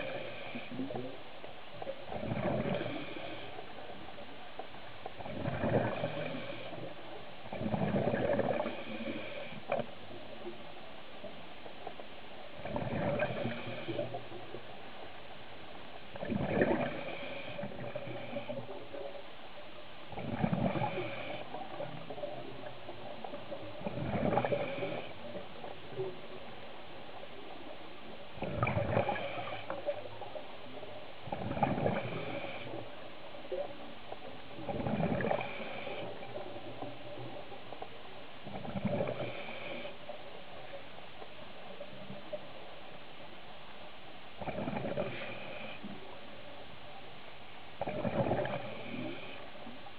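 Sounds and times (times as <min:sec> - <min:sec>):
faint steady hum: 0:00.0 - 0:49.9.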